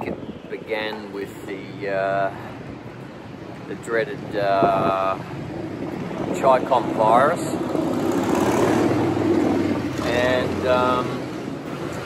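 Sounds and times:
street traffic passing: 0.0 - 12.0.

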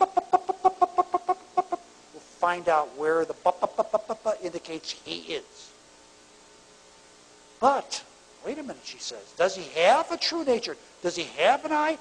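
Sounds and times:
man making staccato vocal sounds: 0.0 - 1.8.

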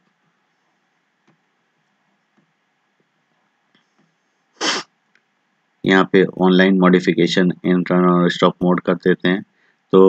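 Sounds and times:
man's explosive burst of breath: 4.6 - 4.8
person speaking: 4.6 - 4.8, 5.9 - 9.4.

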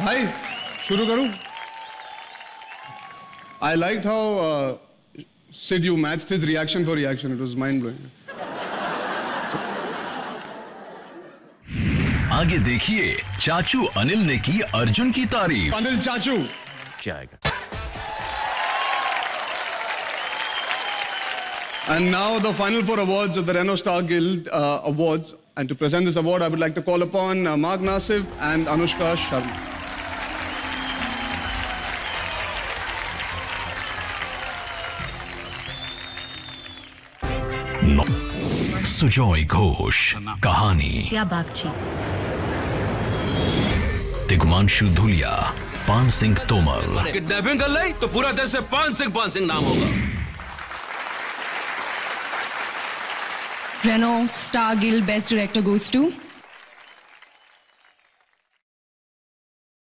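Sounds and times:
audience applauding: 0.0 - 4.0, 8.5 - 11.0, 12.3 - 23.4, 27.9 - 38.2, 44.3 - 49.5, 50.2 - 58.6
loud music: 12.3 - 15.8, 27.9 - 39.0, 43.7 - 49.9
stage entrance music: 12.3 - 15.8, 17.4 - 19.1, 27.8 - 38.8, 43.8 - 49.5.

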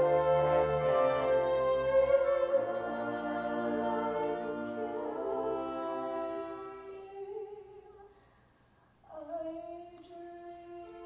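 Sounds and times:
orchestral accompaniment: 0.0 - 7.1.

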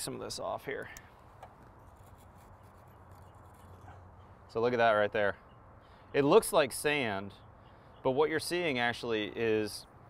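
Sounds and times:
knife scraping mineral scale: 1.8 - 4.0.

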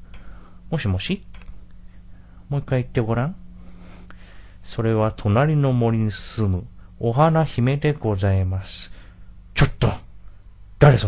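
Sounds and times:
person speaking: 10.8 - 11.0.

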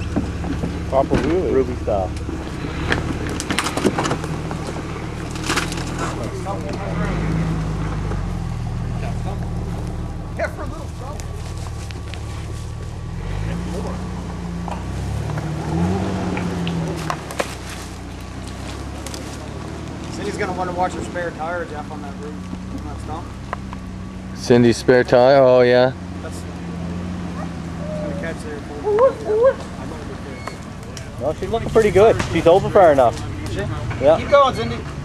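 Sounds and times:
engine running at low revs: 0.0 - 35.0
tyres cracking over wood and rock: 2.1 - 6.9, 14.6 - 24.0.

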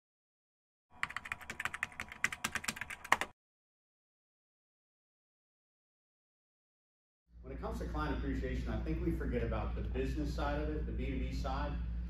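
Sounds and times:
keyboard typing clicks: 1.0 - 3.3.

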